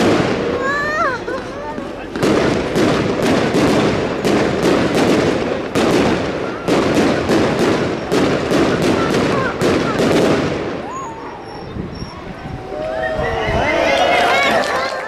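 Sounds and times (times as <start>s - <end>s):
fireworks bangs: 0.0s - 12.7s
fireworks crackling: 0.0s - 13.0s.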